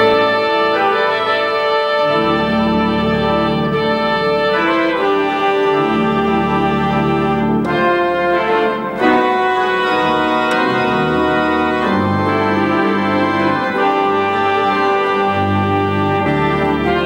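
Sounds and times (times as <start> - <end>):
deep organ pedal bass notes: 0.0 - 17.0
pipe organ chords: 0.0 - 17.0.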